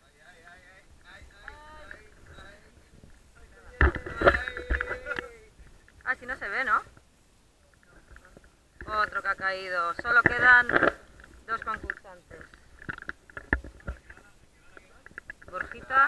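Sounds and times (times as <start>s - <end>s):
men shouting: 3.4s - 5.6s.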